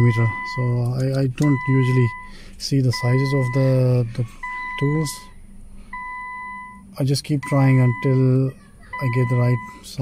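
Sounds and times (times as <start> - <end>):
electronic warning chime beeps: 0.0 - 0.8, 1.4 - 3.8, 4.4 - 5.3, 6.0 - 8.3, 8.9 - 10.0.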